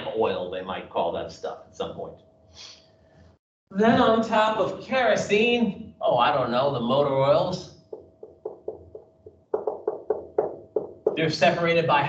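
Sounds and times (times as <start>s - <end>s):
marker writing on whiteboard: 7.9s - 11.2s.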